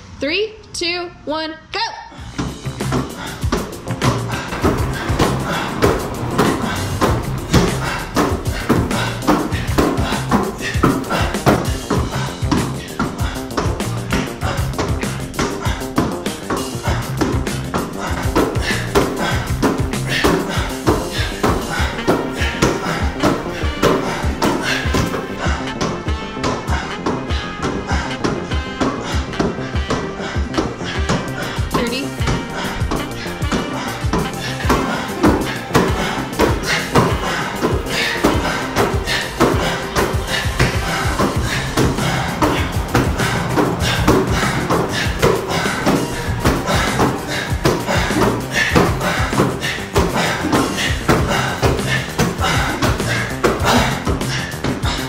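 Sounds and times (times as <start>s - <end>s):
background music with a beat: 2.3s - 55.0s.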